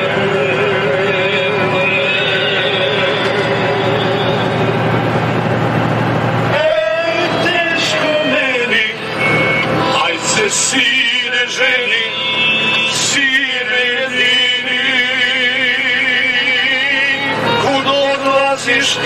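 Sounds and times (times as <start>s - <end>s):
man singing with wavering voice: 0.0s - 5.1s, 6.5s - 19.0s
music: 0.0s - 19.0s
truck engine and road noise: 0.0s - 19.0s.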